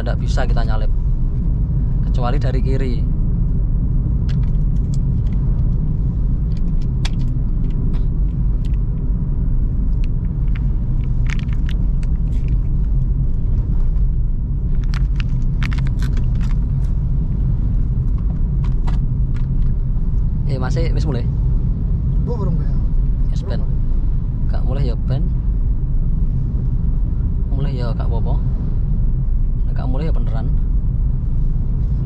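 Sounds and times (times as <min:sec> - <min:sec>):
car cabin road and engine rumble: 0:00.0 - 0:32.0.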